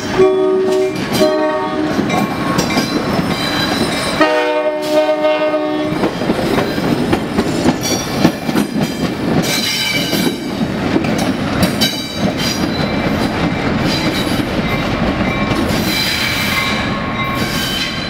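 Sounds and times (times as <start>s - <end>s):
train wheel clatter: 0.0s - 18.0s
locomotive air horn blast: 0.1s - 2.0s, 4.2s - 6.0s.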